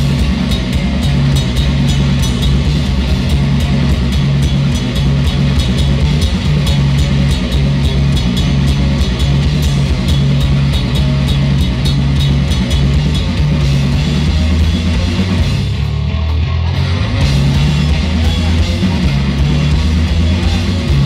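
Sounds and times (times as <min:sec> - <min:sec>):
live rock band playing: 0:00.0 - 0:21.0.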